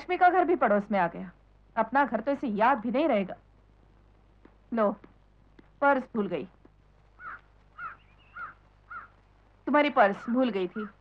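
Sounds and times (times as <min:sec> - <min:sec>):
crow cawing: 0:07.2 - 0:09.2.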